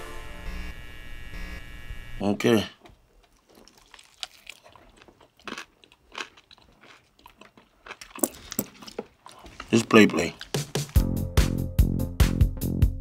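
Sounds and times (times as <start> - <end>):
person chewing and crunching: 3.2 - 11.0.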